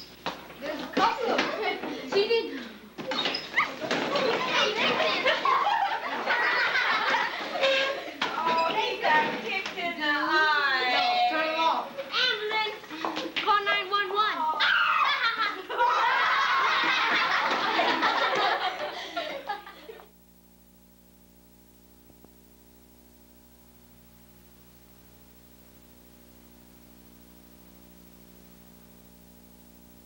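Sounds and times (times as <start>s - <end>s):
children chattering: 0.6s - 17.5s
class laughing: 3.5s - 8.4s, 14.6s - 20.1s
high-pitched cry: 14.6s - 15.3s.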